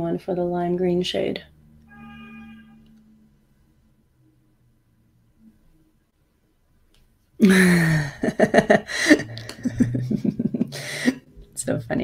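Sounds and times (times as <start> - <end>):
soft pitched ringing tone: 1.7 - 3.2.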